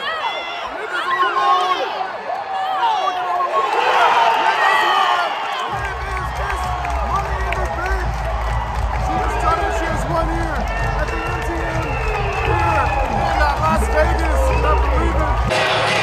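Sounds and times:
crowd shouting and cheering: 0.0 - 16.0
loud music with heavy bass: 12.1 - 16.0.

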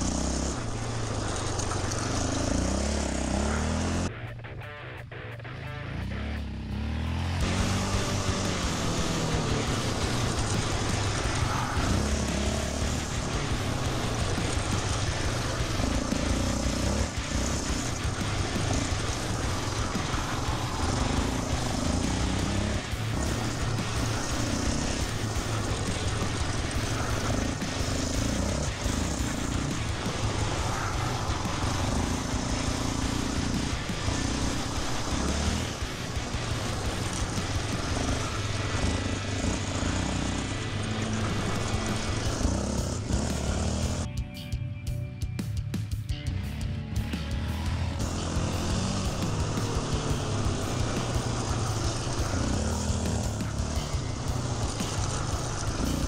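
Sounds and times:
quad engine under throttle: 0.0 - 44.1, 46.3 - 56.0
music playing: 0.0 - 56.0.

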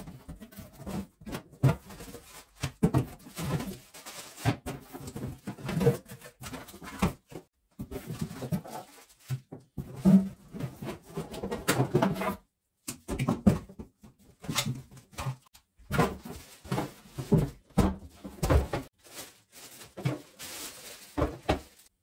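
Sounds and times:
plastic bags rustling: 3.3 - 5.2, 16.0 - 22.0.

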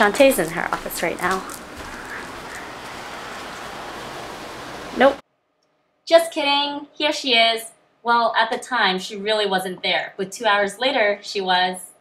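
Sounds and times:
room noise hiss: 0.0 - 5.2.

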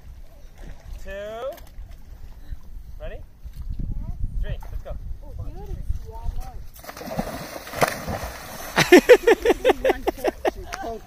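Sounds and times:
wind rumble on microphone: 1.6 - 7.4.

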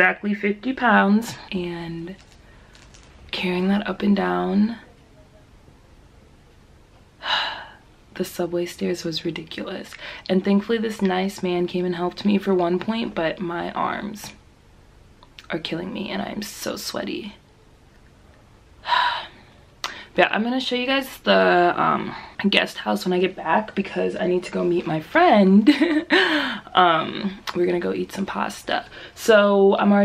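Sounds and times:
woman speaking: 0.0 - 2.2, 3.3 - 5.2, 8.1 - 14.4, 15.4 - 17.4, 20.1 - 30.0
woman breathing in: 18.8 - 20.2, 26.1 - 26.7.

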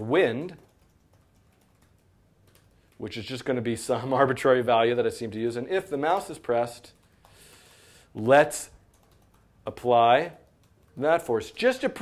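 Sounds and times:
typing on computer keyboard: 0.3 - 3.1, 6.1 - 7.5, 8.8 - 12.0.

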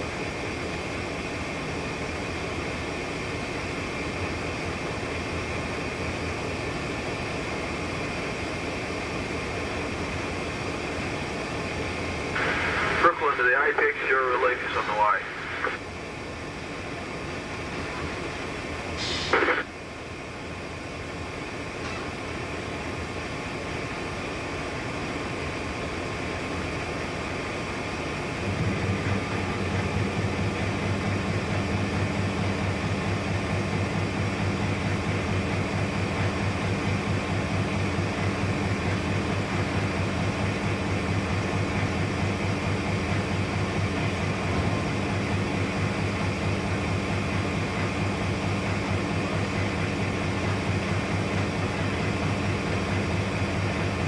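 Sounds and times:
deep engine drone: 0.0 - 54.0
locomotive cab engine running: 0.0 - 54.0
crackly radio voice: 12.4 - 15.8, 19.0 - 19.7
radio noise burst: 12.4 - 15.8, 19.0 - 19.7.

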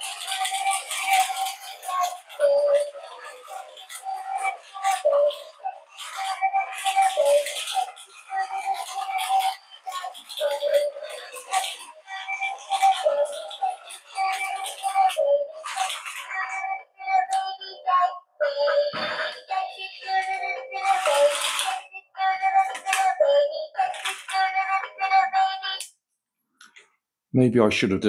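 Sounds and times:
toy music chip playing children's song: 0.0 - 25.9.

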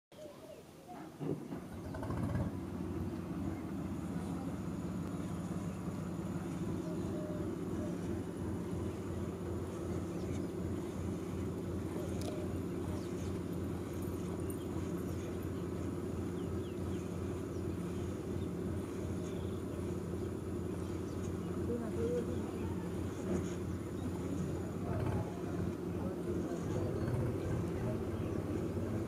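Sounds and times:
small engine droning: 1.2 - 29.0.

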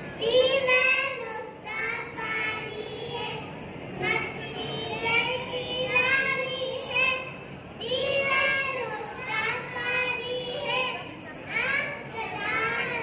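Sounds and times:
children chanting in unison: 0.1 - 13.0.

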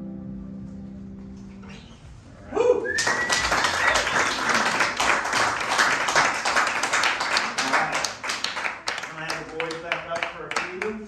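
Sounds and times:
high whistle: 1.7 - 4.3
audience whooping: 2.4 - 5.2
audience clapping: 2.8 - 11.0.

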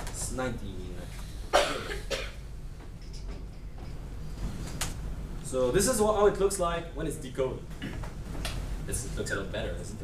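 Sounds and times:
person coughing: 1.5 - 2.4.

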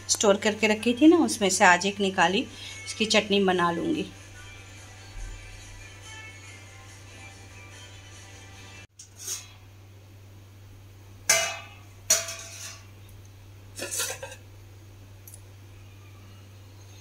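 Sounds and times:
faint background music: 0.0 - 9.0
steady low hum: 8.8 - 17.0
metal cookware clanking: 9.0 - 9.6, 11.3 - 13.0, 13.8 - 14.4.

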